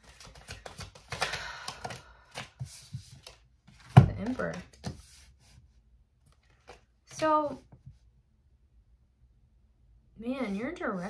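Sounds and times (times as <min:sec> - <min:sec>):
cards being shuffled: 0:00.0 - 0:05.6, 0:06.3 - 0:07.6.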